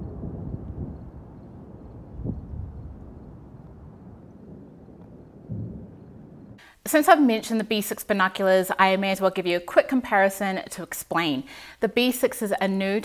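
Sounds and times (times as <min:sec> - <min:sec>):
wind rumbling on microphone: 0:00.0 - 0:06.6.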